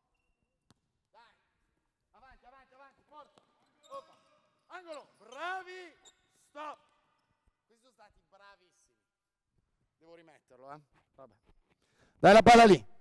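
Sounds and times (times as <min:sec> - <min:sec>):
high-pitched shoe squeaks: 0:03.2 - 0:06.6
players calling: 0:12.2 - 0:12.9.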